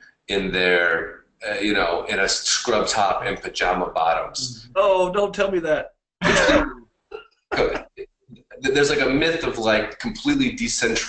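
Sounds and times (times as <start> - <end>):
man laughing: 0.3 - 4.5, 6.2 - 6.8, 7.5 - 8.0, 8.6 - 11.0.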